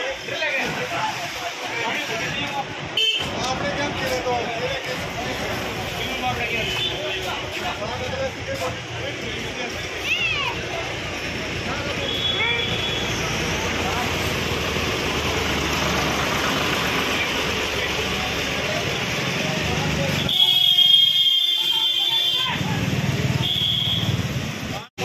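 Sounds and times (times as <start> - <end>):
passing traffic: 0.0 - 25.0
people's voices: 0.0 - 25.0.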